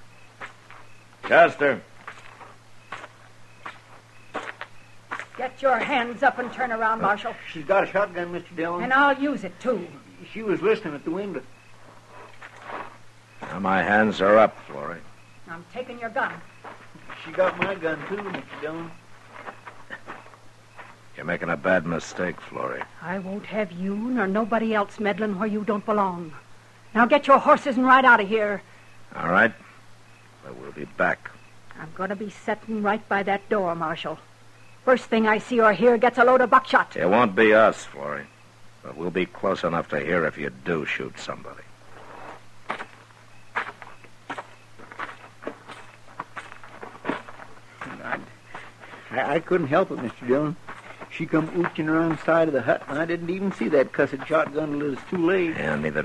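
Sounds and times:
steady low hum: 0.0s - 56.0s
footsteps walking: 0.4s - 1.4s, 2.0s - 6.8s, 11.8s - 13.6s, 16.6s - 21.0s, 41.8s - 56.0s
faint clicks and rustles: 11.6s - 13.6s.

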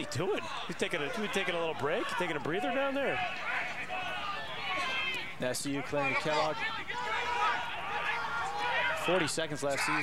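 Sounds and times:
distant shouting voices: 0.0s - 10.0s
open-air background noise: 0.0s - 10.0s.

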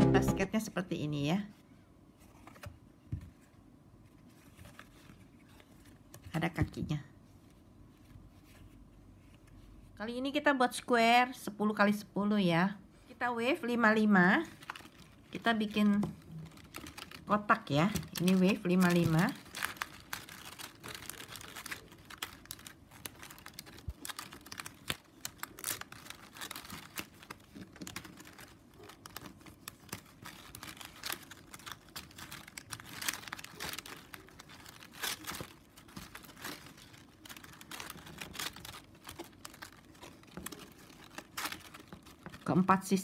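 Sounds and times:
plastic strapping rustling and clicking: 14.5s - 42.6s.

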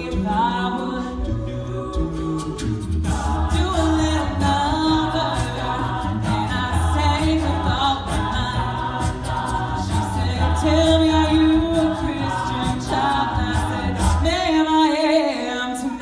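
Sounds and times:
sung bass line: 0.0s - 15.2s
a cappella group singing chords: 0.0s - 16.0s.

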